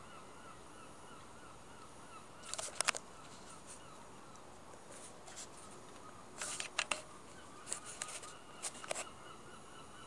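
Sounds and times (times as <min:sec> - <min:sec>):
background hiss: 0:00.0 - 0:10.0
scratchy rustles: 0:04.8 - 0:09.1.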